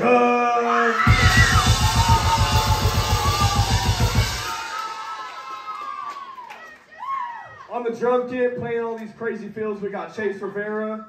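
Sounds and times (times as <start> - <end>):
rock band playing low notes: 1.1 - 4.7
crashing cymbals: 1.1 - 5.0.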